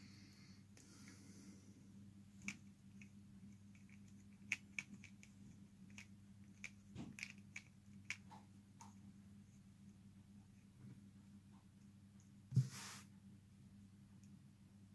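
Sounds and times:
faint low hum: 0.0s - 14.9s.

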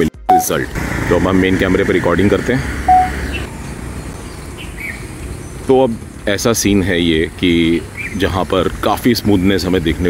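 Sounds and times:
outdoor background hiss: 0.4s - 10.0s.

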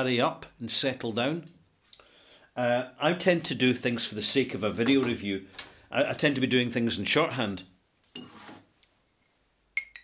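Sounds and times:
glass scraping on table: 8.2s - 9.4s.

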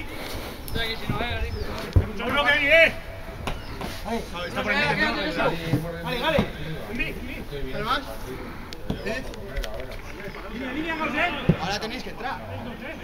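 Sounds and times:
voices calling and shouting: 0.0s - 13.0s
men calling out: 4.0s - 8.6s.

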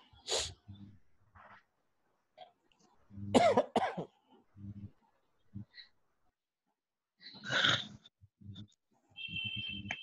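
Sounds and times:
person coughing: 3.3s - 4.1s.

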